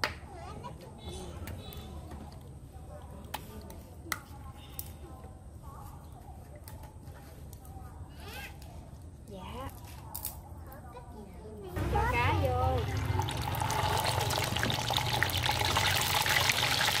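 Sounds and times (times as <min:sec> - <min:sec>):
oil pouring into a frying pan: 0:12.9 - 0:17.0.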